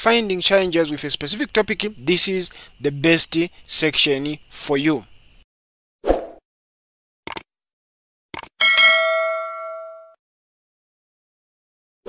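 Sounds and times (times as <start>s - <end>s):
bell ding: 8.6s - 10.2s.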